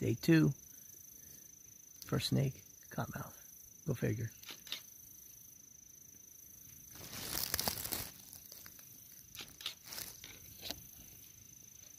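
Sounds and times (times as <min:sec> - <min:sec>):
dry leaves rustling and crackling: 0:06.9 - 0:10.8.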